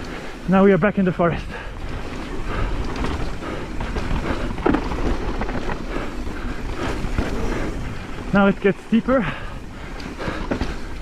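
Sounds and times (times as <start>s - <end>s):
bike rattling over bumps: 0.0s - 11.0s
bike tyres rolling on dirt: 0.0s - 11.0s.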